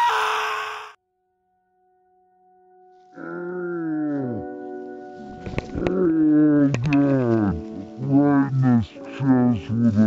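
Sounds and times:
cartoon character screaming: 0.0s - 1.0s.

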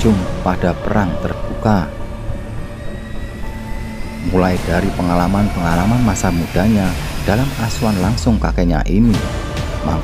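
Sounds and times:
low steady drone: 0.0s - 9.8s.

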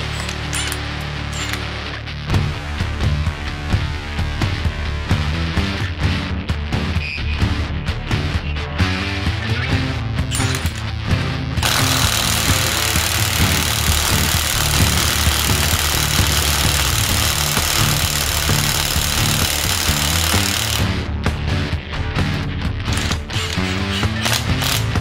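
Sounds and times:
impact wrench hammering lug nut: 0.0s - 1.6s, 10.3s - 10.8s, 11.6s - 20.9s, 22.9s - 24.9s
background music with steady beat: 0.0s - 25.0s.

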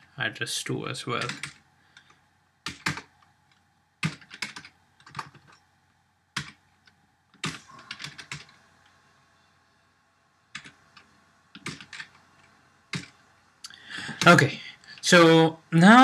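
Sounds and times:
computer keyboard typing: 1.2s - 3.1s, 4.0s - 5.6s, 6.4s - 6.6s, 7.4s - 8.6s, 10.5s - 13.2s.

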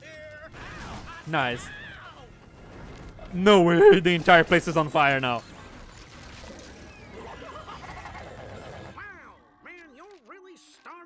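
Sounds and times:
music: 0.0s - 11.0s
fire and destruction effects: 0.4s - 9.1s.

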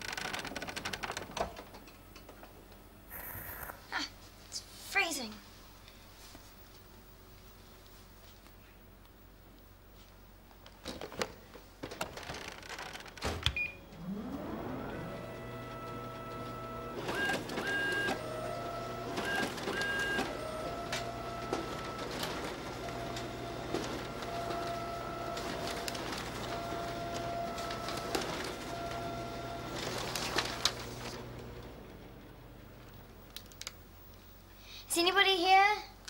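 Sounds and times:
photocopier motor whirring: 13.9s - 33.2s
photocopier clicks: 15.5s - 31.7s.

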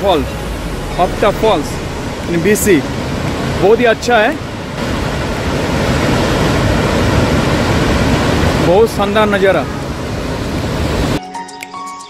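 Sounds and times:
waterfall rushing: 0.0s - 11.2s.

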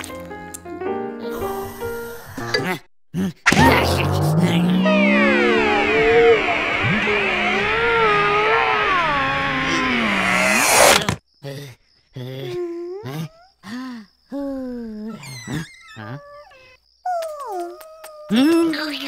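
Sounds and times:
swelling music cue: 3.5s - 10.9s.

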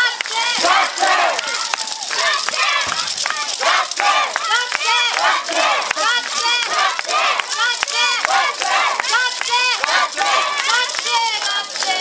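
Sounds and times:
women shouting calls together: 0.0s - 11.7s.

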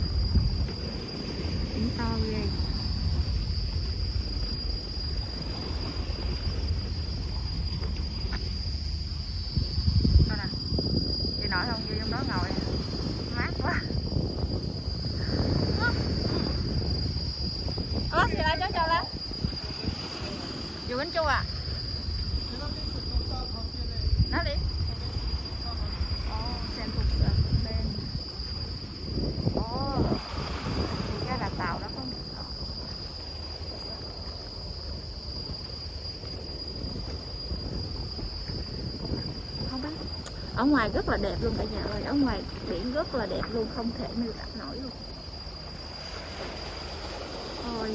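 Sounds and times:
insects droning: 0.0s - 47.9s
wind on microphone: 0.0s - 47.9s.

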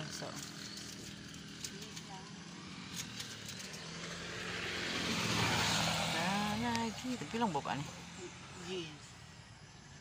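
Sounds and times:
motor vehicle engine: 0.0s - 10.0s.

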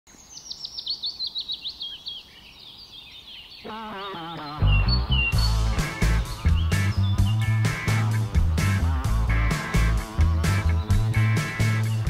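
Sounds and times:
songbird chirping: 0.1s - 12.0s.

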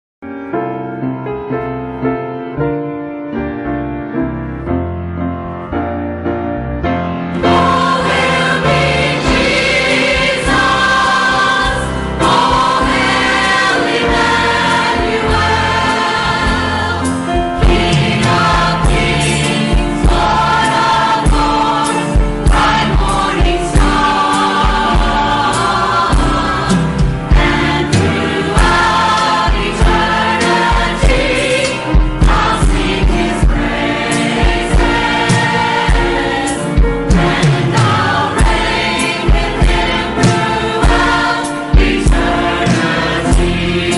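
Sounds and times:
church choir singing: 6.8s - 43.9s
steady low beat: 11.8s - 43.9s.

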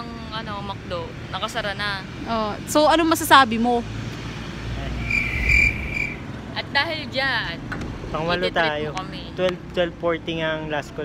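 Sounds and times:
high-pitched trilling tone: 5.0s - 6.2s.

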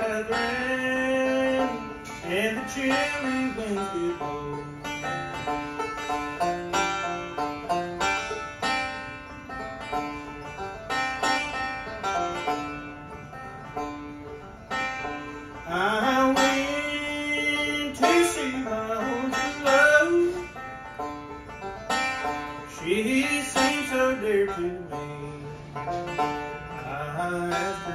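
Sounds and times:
acoustic guitar rhythm: 0.0s - 27.9s
banjo picking: 0.0s - 27.9s
sliding resonator guitar lead: 0.0s - 27.9s
person singing: 15.7s - 20.5s.

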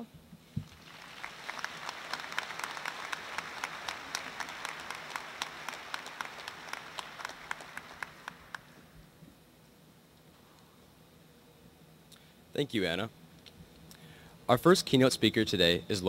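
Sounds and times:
audience applause: 0.6s - 8.9s.

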